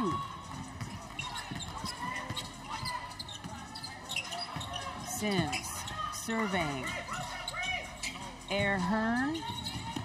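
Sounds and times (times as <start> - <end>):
sneakers squeaking: 0.0 - 10.0.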